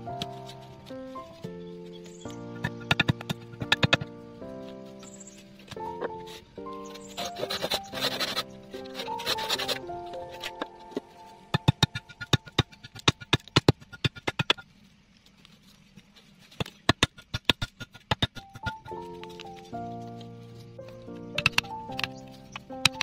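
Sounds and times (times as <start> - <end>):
background music: 0.0 - 13.4, 18.3 - 23.0
knife chopping wood: 2.6 - 4.1.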